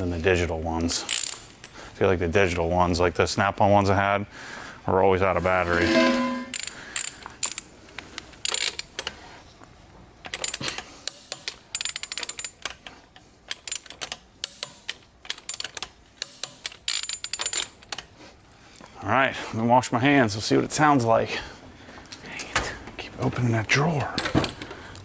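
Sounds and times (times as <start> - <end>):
torque wrench ratchet clicking: 10.3 - 12.8, 13.5 - 17.8.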